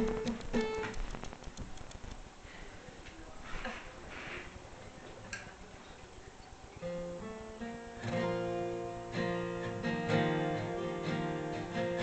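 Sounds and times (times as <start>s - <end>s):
acoustic guitar plucked notes: 0.0s - 1.0s, 6.8s - 12.0s
small clicks: 0.1s - 2.2s.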